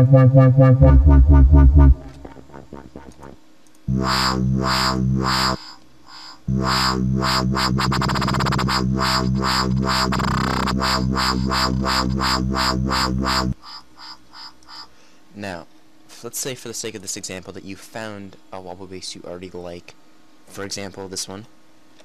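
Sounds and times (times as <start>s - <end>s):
wobble bass synth: 0.0s - 14.9s.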